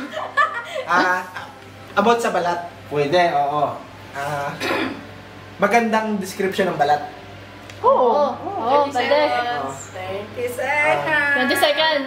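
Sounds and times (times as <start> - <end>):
throat clearing: 4.4 - 5.0.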